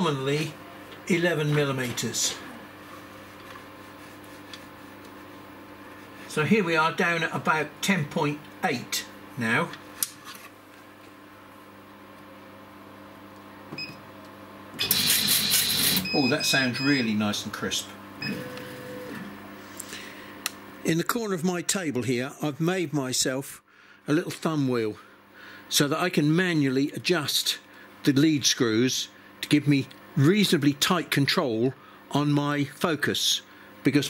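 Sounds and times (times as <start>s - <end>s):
laser cutter whine: 14.8s - 19.4s
laser cutter low hum: 14.8s - 19.6s.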